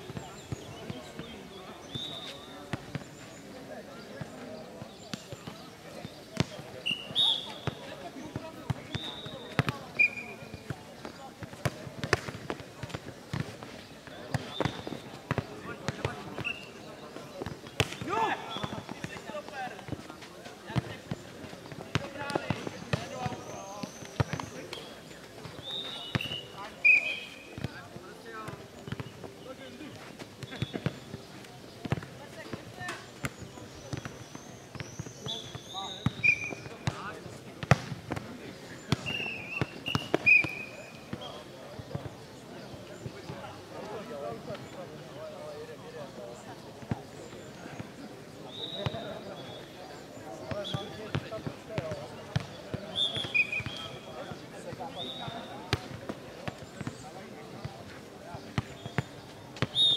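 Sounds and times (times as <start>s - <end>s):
ball kicked and bouncing: 4.2s - 6.7s, 7.6s - 9.9s, 10.5s - 13.7s, 31.8s - 38.3s, 50.5s - 53.8s.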